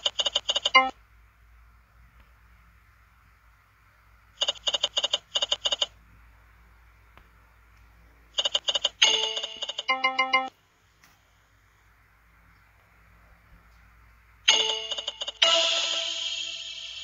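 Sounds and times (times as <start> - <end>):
tinkling slot game jingle: 9.0 - 10.5, 14.5 - 17.0.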